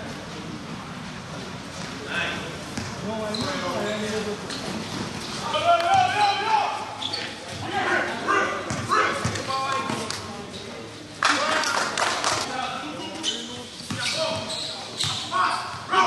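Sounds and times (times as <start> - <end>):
basketball bouncing on hard court: 2.8 - 3.6, 8.7 - 9.4.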